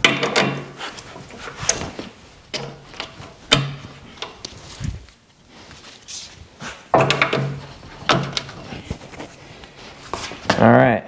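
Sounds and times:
hose couplers clicking and clunking: 0.0 - 4.6, 6.9 - 8.7.

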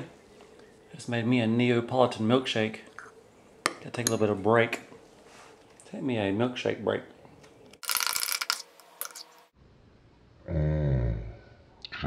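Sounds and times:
metal spoon scraping ceramic mug: 7.8 - 9.4.

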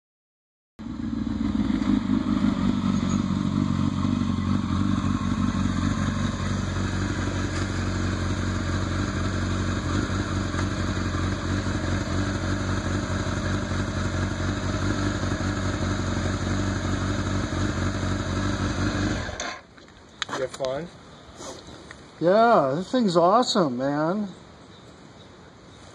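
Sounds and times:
motorcycle engine idling: 0.8 - 19.7.

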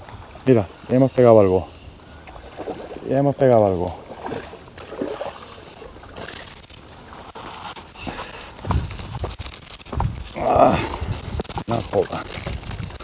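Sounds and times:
water sloshing and trickling: 0.0 - 13.0.

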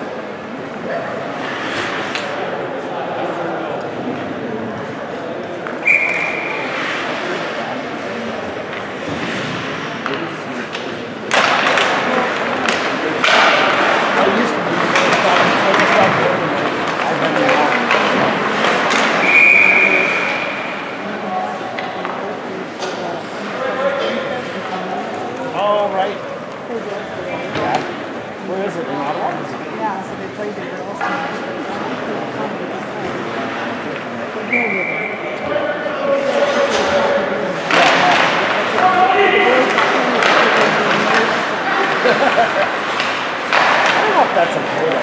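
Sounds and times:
referee's whistle: 5.8 - 6.6, 19.2 - 20.6, 34.5 - 35.3
crowd shouting and cheering: 34.8 - 44.9.

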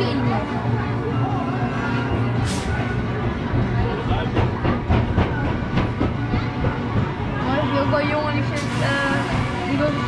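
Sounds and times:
people talking: 3.6 - 10.0.

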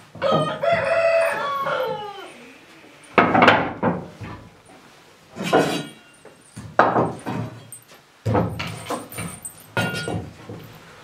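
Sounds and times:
rooster crowing: 0.2 - 2.6.

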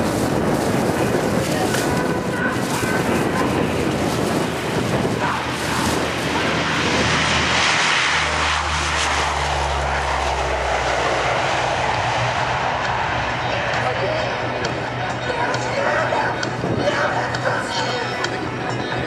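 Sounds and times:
deep engine hum: 0.0 - 19.0
turboprop plane taking off: 0.0 - 19.0.

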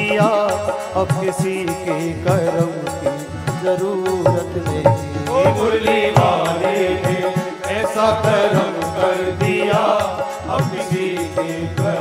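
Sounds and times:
devotional melody: 0.0 - 12.0
person singing: 0.0 - 12.0
steady drum beat: 0.0 - 12.0.

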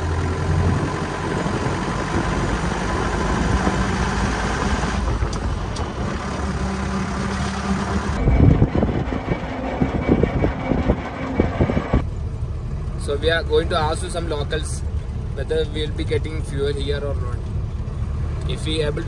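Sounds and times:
jeep engine running: 0.0 - 19.0
wind buffeting microphone: 0.2 - 7.2, 7.8 - 12.0.

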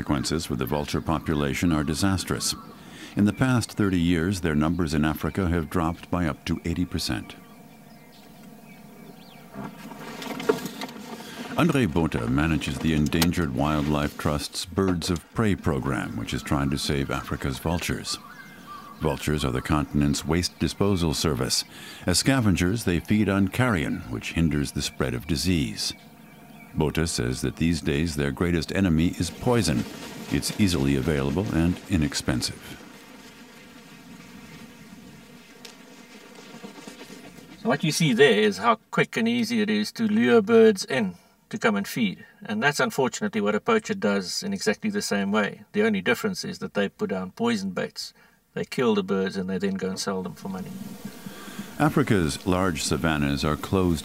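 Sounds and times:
outdoor ambience: 0.0 - 54.0
faint buzzing drone: 5.1 - 14.4, 15.2 - 37.6, 50.2 - 54.0.

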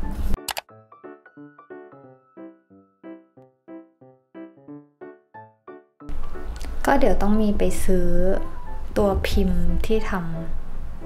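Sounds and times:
plucked keyboard music: 0.0 - 6.7.

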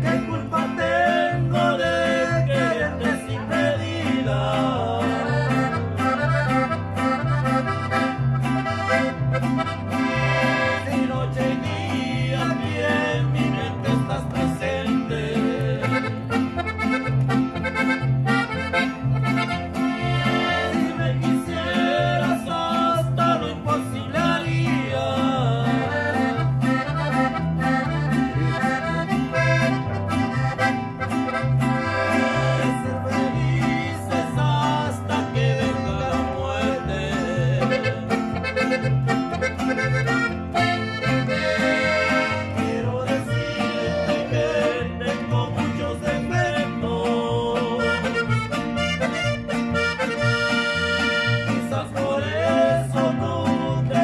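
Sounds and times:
accordion melody: 0.0 - 54.0
bass guitar line: 0.0 - 54.0
strummed guitars: 0.0 - 54.0.

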